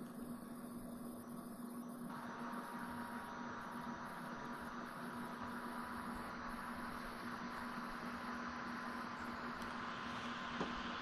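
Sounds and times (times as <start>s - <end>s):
faint electrical hum: 0.0s - 11.0s
steady hiss: 0.0s - 11.0s.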